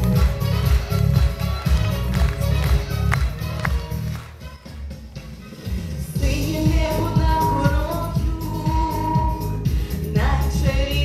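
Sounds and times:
instrumental backing track: 0:00.0 - 0:11.0.

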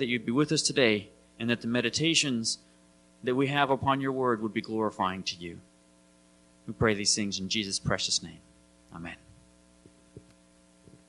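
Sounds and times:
person speaking: 0:00.0 - 0:02.6, 0:03.2 - 0:05.6, 0:06.7 - 0:09.4
electrical mains hum: 0:00.0 - 0:11.0.

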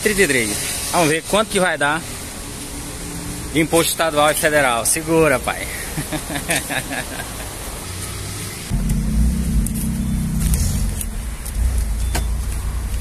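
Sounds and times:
traffic and street noise: 0:00.0 - 0:13.0
car engine running: 0:08.6 - 0:13.0.

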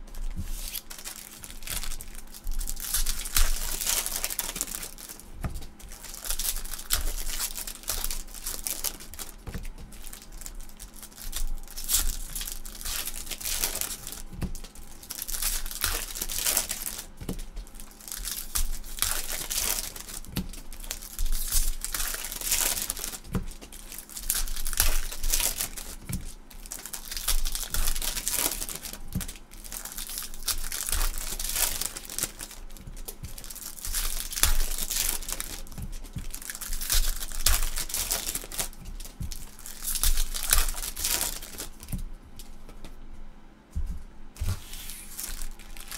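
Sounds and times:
foil wrappers crinkling: 0:00.0 - 0:42.9, 0:44.4 - 0:45.9.

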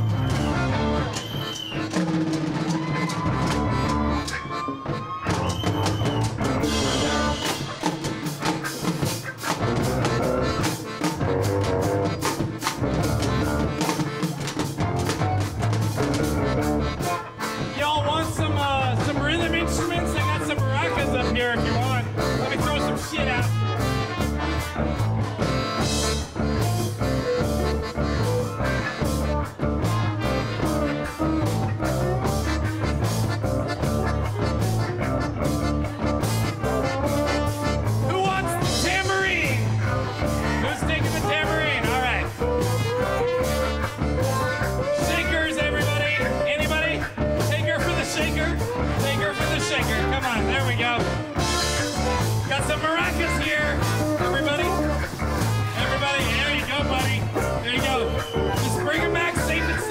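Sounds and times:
live band playing upbeat song: 0:00.0 - 0:59.9
wavering lead melody: 0:01.9 - 0:59.9.

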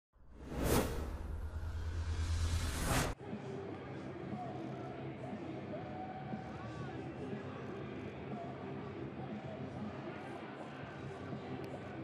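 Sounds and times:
rising whoosh: 0:00.3 - 0:03.2
deep rumble: 0:00.4 - 0:03.2.

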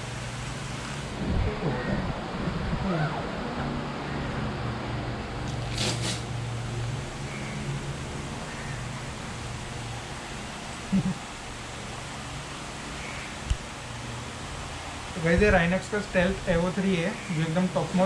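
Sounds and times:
indoor room hum: 0:00.0 - 0:18.0.

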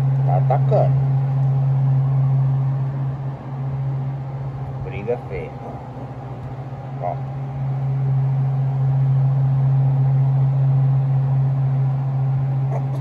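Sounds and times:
low machine hum: 0:00.0 - 0:13.0.

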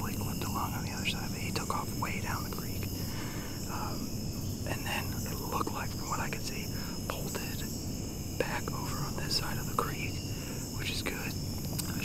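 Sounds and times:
person whispering: 0:00.0 - 0:03.0, 0:03.6 - 0:04.0, 0:04.7 - 0:07.7, 0:08.4 - 0:12.0
crickets and insects chirping: 0:00.0 - 0:12.0.

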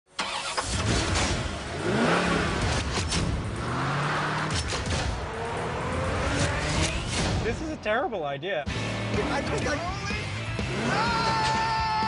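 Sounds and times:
car engine starting and revving: 0:00.1 - 0:07.5, 0:08.7 - 0:11.5
music: 0:05.0 - 0:12.0.

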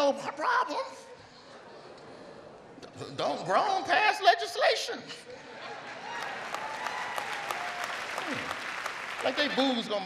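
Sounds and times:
audience applauding: 0:05.7 - 0:10.0.

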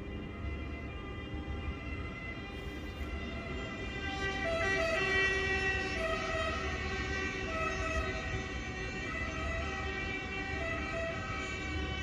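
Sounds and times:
high-speed train rolling slowly: 0:00.0 - 0:12.0.

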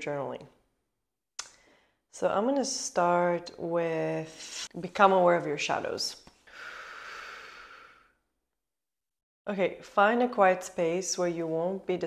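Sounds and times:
person breathing out: 0:06.5 - 0:08.1.

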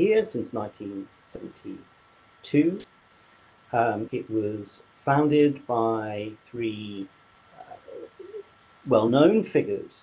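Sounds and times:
pigeon cooing: 0:07.6 - 0:08.5.

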